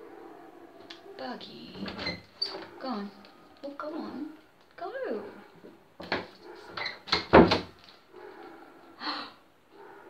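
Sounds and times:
door knocks and scrapes: 6.0 - 7.8.

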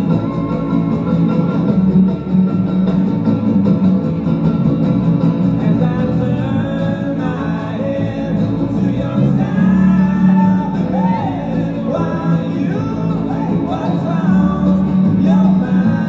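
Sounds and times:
guitar strumming: 0.0 - 16.0
upright bass: 0.0 - 16.0
person singing: 5.6 - 16.0.

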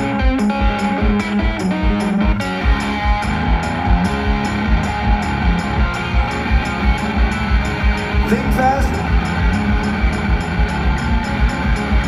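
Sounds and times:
electric guitar: 0.0 - 12.0
person singing: 8.2 - 9.2.

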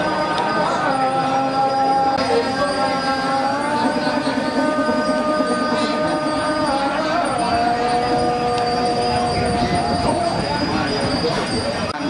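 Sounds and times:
voices singing sliding held notes: 0.0 - 10.5.

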